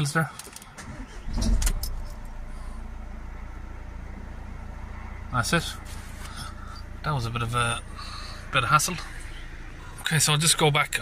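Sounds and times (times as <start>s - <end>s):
diesel engine starting and idling: 0.2s - 11.0s.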